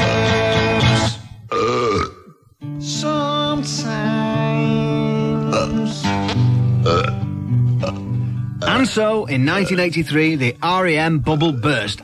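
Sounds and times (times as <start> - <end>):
slow song with guitar: 0.0 - 9.0
person burping: 1.5 - 2.4, 5.5 - 5.8, 6.8 - 9.8.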